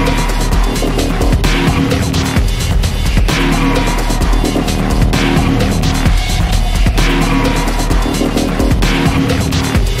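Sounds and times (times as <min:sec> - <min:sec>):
electronic music: 0:00.0 - 0:09.8
rapid percussion hits: 0:00.3 - 0:10.0
heavy bass line: 0:00.8 - 0:09.4
noisy high sweeps: 0:03.4 - 0:08.4.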